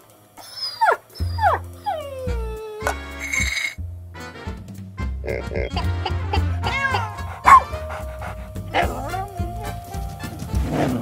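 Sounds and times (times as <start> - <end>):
squeaky cartoon animal voices: 0.6 - 3.8, 5.3 - 7.8
cartoon background music: 1.3 - 11.0.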